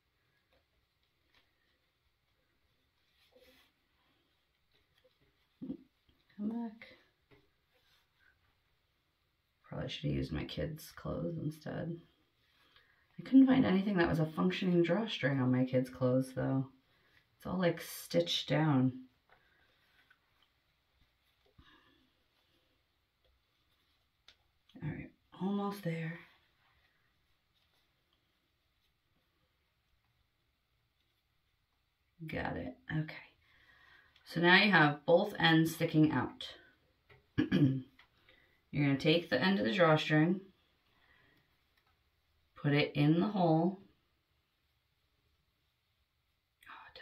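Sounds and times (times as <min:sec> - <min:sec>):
fabric handling: 0:00.2 - 0:09.1, 0:19.1 - 0:31.9.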